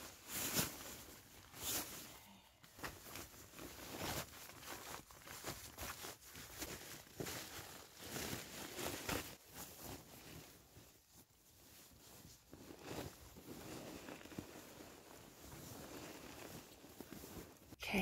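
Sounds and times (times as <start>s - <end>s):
nylon sleeping bag rustling: 0.0s - 17.8s.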